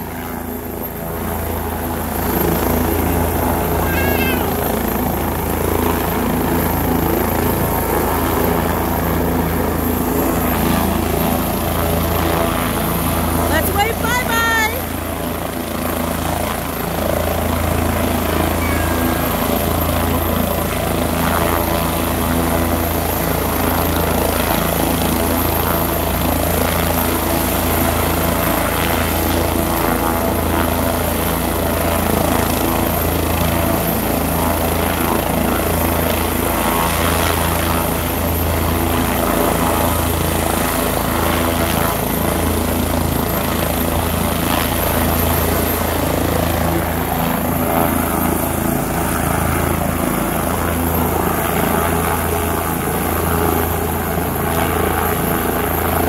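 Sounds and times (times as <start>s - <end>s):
helicopter rotor beating: 0.0s - 56.0s.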